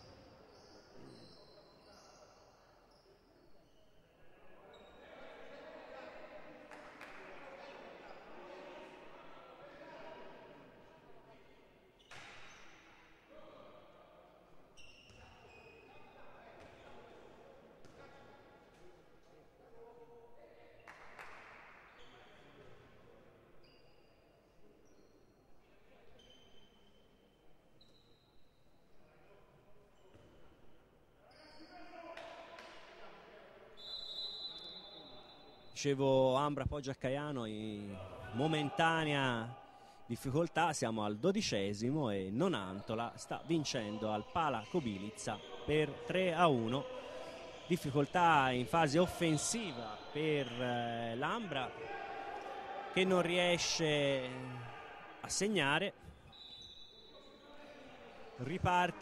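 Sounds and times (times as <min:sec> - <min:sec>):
high shoe squeaks: 0:14.8 - 0:16.2.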